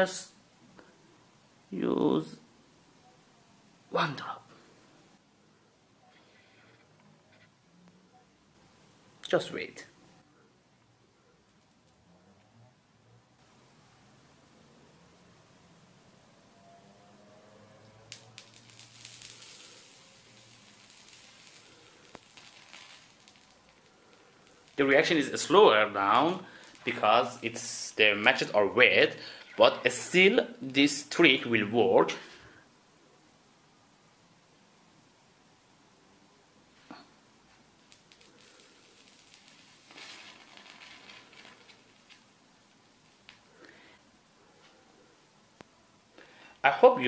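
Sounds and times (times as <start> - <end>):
match heads sizzling and crackling: 17.5 - 32.4, 36.7 - 43.8
sharp pops: 36.8 - 42.3.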